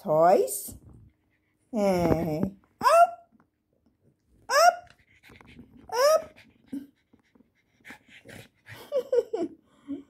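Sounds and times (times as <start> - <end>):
puppy yipping: 2.8 - 3.3, 4.5 - 5.0.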